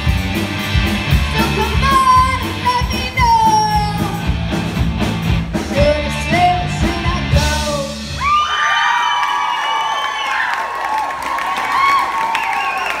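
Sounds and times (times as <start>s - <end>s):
rock band playing: 0.0s - 8.7s
audience cheering and whooping: 8.1s - 13.0s.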